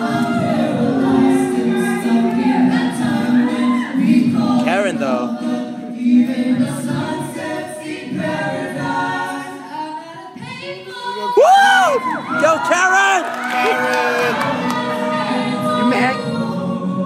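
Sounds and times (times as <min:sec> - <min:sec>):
group singing in close harmony: 0:00.0 - 0:12.6, 0:13.7 - 0:17.0.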